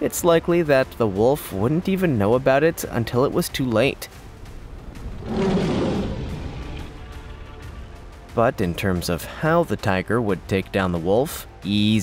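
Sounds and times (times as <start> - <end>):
background music: 0.0 - 12.0
tiger growling: 4.2 - 9.0.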